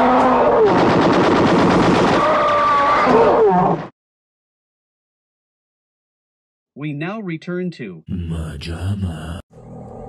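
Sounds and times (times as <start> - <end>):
rapid machine-gun fire: 0.7 - 2.2.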